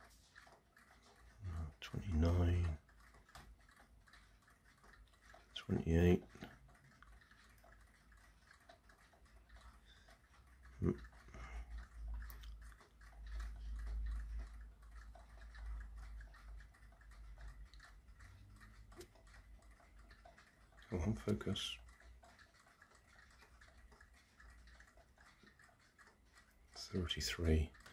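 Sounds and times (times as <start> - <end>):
fan ticking: 0.0 - 27.9.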